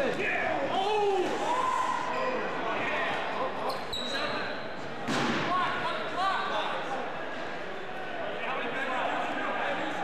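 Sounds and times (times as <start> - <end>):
voices echoing in a gymnasium: 0.0 - 10.0
loud thud: 5.0 - 5.6.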